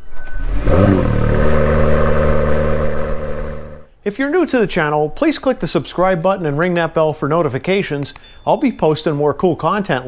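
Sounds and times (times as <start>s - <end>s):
car engine revving: 0.4s - 3.9s.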